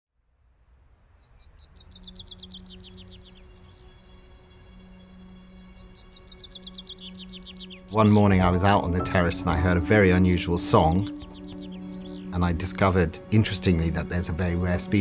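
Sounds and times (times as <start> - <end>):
songbird trilling: 5.3 - 12.9.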